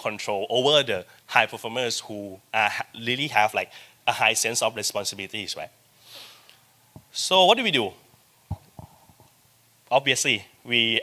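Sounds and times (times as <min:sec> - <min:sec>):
man talking: 0:00.0 - 0:05.7, 0:07.1 - 0:08.0, 0:09.9 - 0:11.0
soft low thump: 0:08.5 - 0:09.3.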